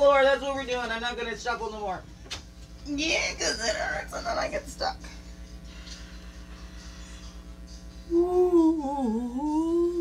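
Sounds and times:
low throbbing hum: 0:00.0 - 0:10.0.

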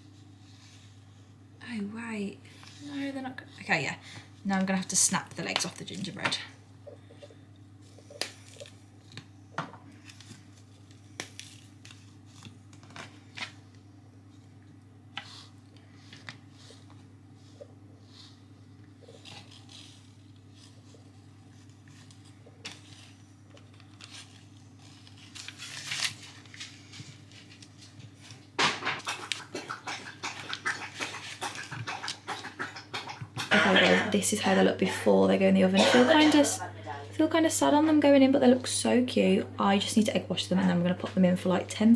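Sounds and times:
steady low hum: 0:00.0 - 0:41.9
hands tapping and rustling paper: 0:07.9 - 0:13.8, 0:19.0 - 0:33.7.

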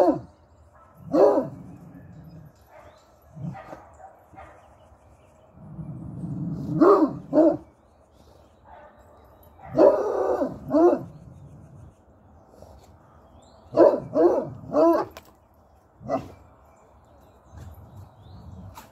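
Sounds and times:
dog barking: 0:00.8 - 0:01.6, 0:02.7 - 0:04.7, 0:06.7 - 0:07.6, 0:09.6 - 0:11.1, 0:13.7 - 0:15.2.

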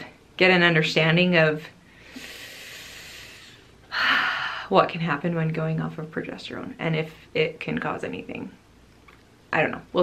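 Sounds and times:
woman breathing: 0:01.8 - 0:04.7.

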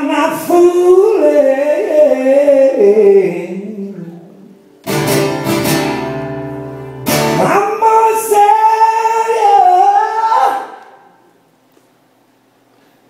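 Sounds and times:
acoustic guitar strumming: 0:04.7 - 0:10.6
person singing: 0:07.3 - 0:11.1.

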